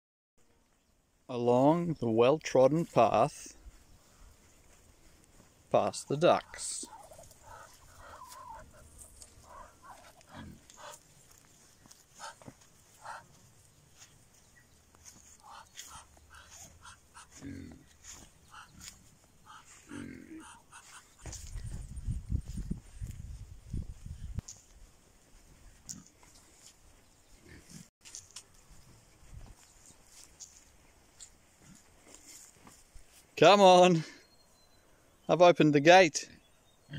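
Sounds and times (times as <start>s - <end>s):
ducks making soft calls: 3.5s - 23.4s
pigs grunting: 6.4s - 11.0s, 15.4s - 18.9s, 19.5s - 21.1s.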